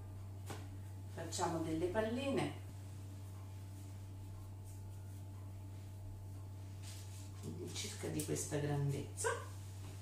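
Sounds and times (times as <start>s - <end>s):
soft rubbing of dough: 0.0s - 10.0s
steady low hum: 0.0s - 10.0s.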